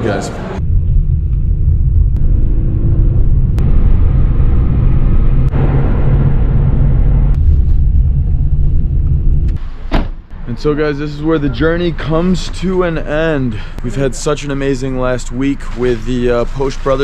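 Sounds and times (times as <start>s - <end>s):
car engine: 0.0s - 15.0s
road noise: 0.0s - 17.0s.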